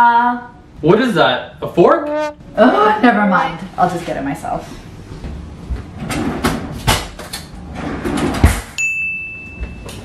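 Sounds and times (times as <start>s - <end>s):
steady high electronic tone: 1.9s - 2.7s.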